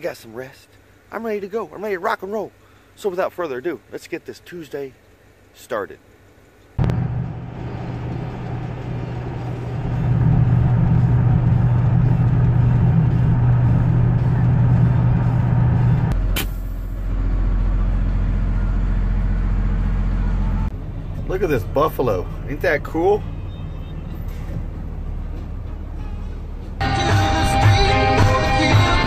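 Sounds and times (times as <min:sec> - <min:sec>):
vehicle engine and road noise: 0:05.0 - 0:29.0.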